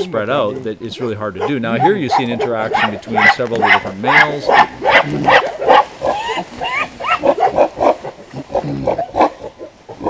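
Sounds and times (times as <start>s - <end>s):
gorillas making harsh calls: 0.0s - 10.0s.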